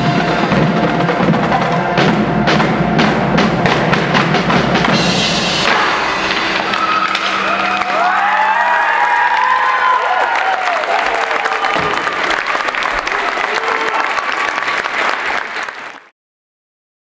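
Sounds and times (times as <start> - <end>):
audience applauding: 6.0 - 16.1
people whooping: 6.5 - 15.6.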